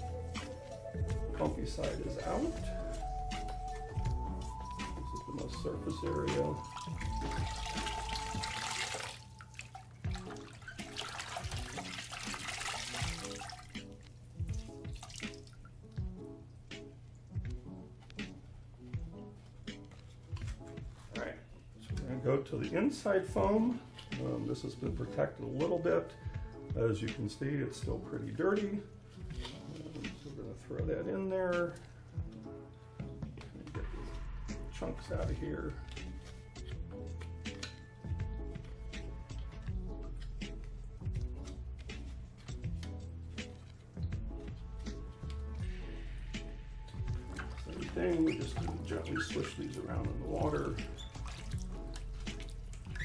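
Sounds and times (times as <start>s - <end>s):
quiet background music: 0.0s - 53.0s
water sloshing in a bucket: 5.3s - 16.2s, 46.9s - 53.0s.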